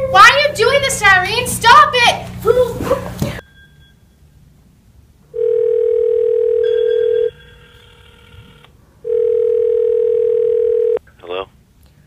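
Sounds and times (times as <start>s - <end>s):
telephone ringback tone: 5.4s - 11.0s.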